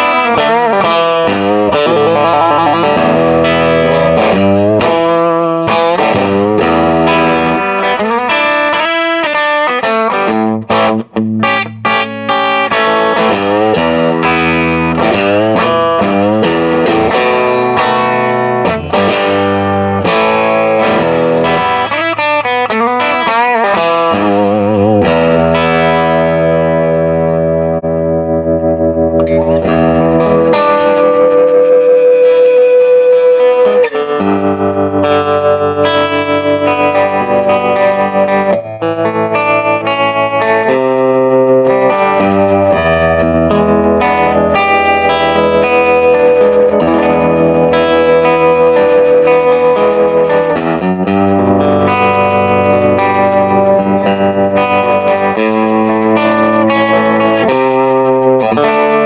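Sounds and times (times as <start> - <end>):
electric guitar notes and chords: 0.0 - 59.0.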